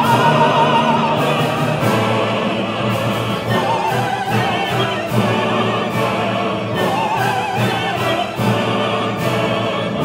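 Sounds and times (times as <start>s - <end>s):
opera soloists singing: 0.0s - 10.0s
orchestra and chorus: 0.0s - 10.0s.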